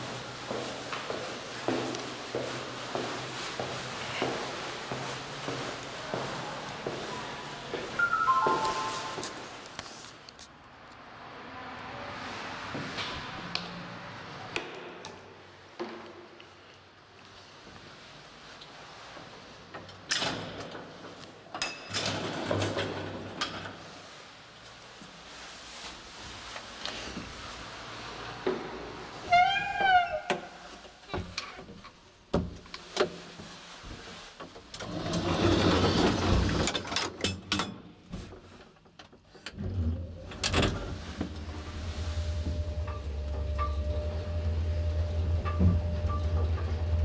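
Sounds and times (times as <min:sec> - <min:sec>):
elevator door and gate clatter: 0:20.1 - 0:23.8, 0:34.8 - 0:37.9, 0:39.5 - 0:47.0
low hum: 0:39.9 - 0:47.0.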